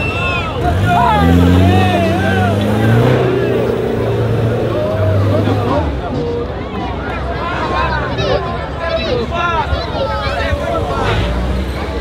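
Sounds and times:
spectators chattering: 0.0 - 12.0
engine revving under load: 0.4 - 6.2.

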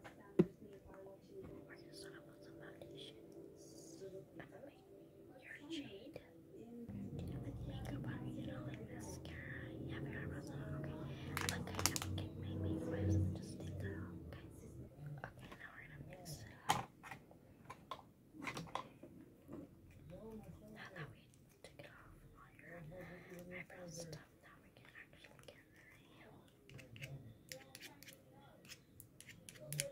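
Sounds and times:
soft whispering: 0.2 - 16.9, 18.5 - 29.9
low steady hum: 0.6 - 16.7
plastic makeup jars handled: 11.4 - 12.1.

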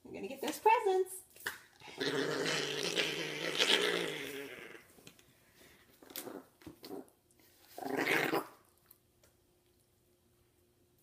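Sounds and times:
small dog growling: 1.8 - 4.9, 6.1 - 7.1, 7.8 - 8.6.

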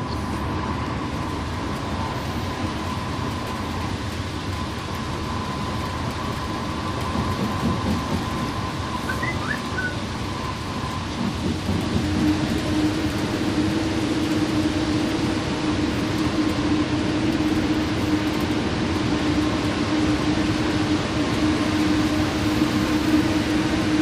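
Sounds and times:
engine and tyre rumble: 0.0 - 24.0.

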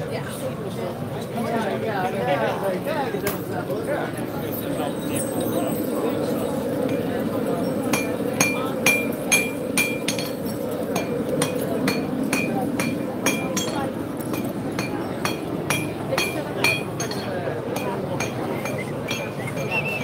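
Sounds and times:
crowd chatter: 0.0 - 20.0
hammer striking metal on anvil: 7.9 - 10.4, 11.0 - 19.4.

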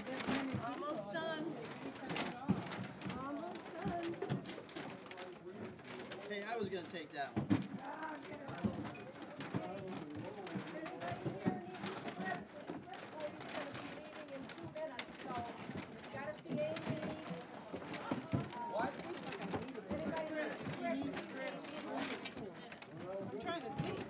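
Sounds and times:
paper bags rustling: 0.0 - 24.0
canned goods knocking: 7.3 - 12.9
people talking over one another: 7.9 - 24.0.

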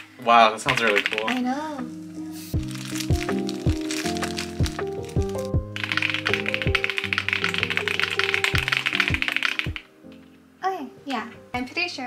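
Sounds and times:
background music with steady beat: 0.0 - 12.0
fast typing on mechanical keyboard: 0.6 - 1.6, 2.7 - 9.9.

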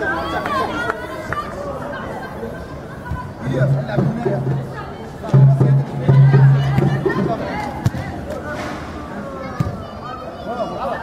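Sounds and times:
spectators chattering: 0.0 - 11.0.

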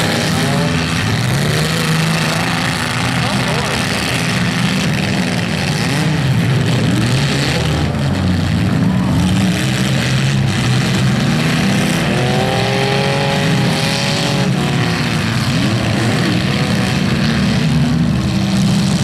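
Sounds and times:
car engines revving: 0.0 - 19.0.

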